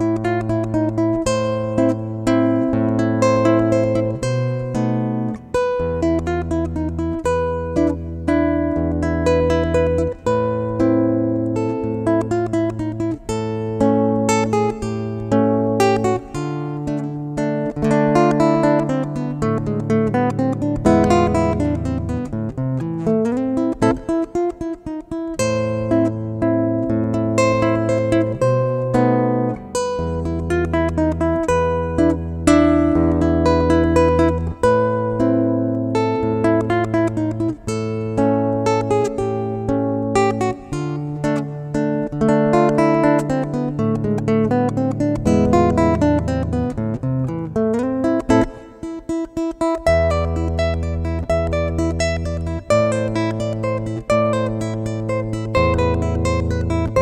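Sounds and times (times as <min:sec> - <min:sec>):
nylon-string guitar fingerstyle waltz: 0:00.0 - 0:57.0.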